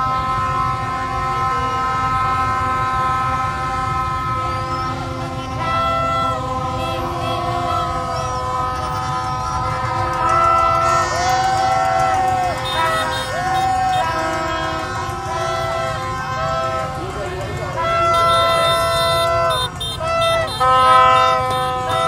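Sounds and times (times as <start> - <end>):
motorbikes rumbling: 0.0 - 22.0
plastic trumpets and horns blowing: 0.0 - 22.0.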